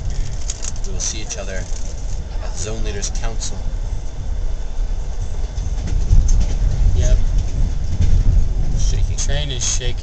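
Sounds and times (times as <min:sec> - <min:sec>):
train carriage rumbling on rails: 0:00.0 - 0:10.0.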